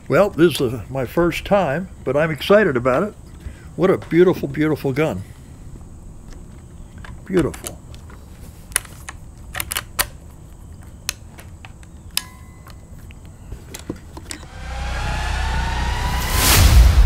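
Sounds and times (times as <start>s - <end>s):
rifle handling clicks and knocks: 6.2s - 14.4s
whoosh with climbing tone: 14.4s - 17.0s.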